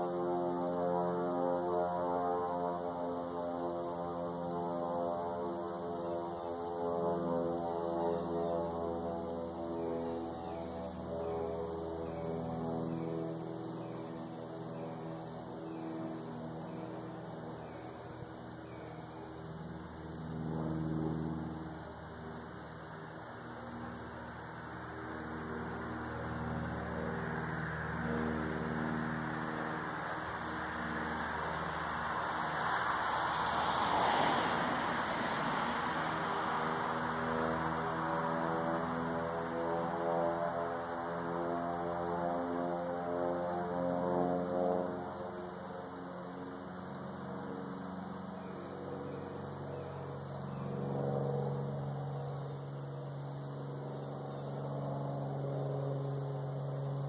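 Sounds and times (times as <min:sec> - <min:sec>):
crickets chirping: 0:00.0 - 0:57.0.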